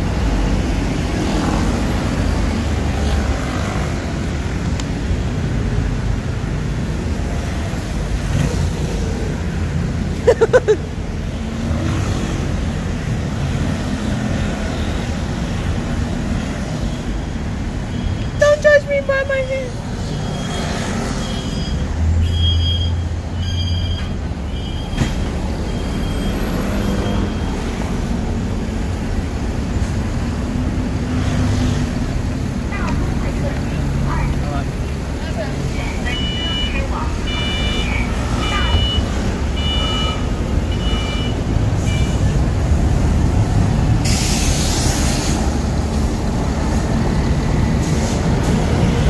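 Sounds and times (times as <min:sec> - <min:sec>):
passing cars and buses: 0:00.0 - 0:49.0
falling squeal: 0:20.2 - 0:27.6.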